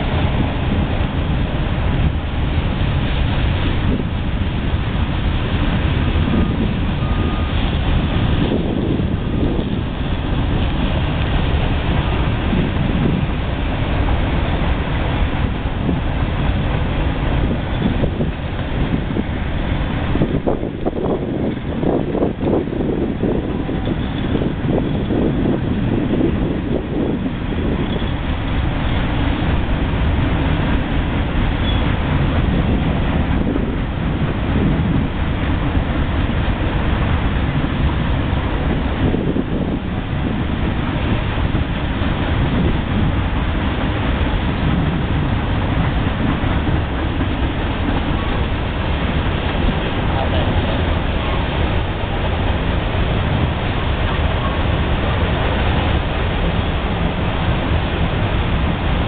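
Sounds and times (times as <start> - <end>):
freight train wheels rattling on rail: 0.0 - 59.0.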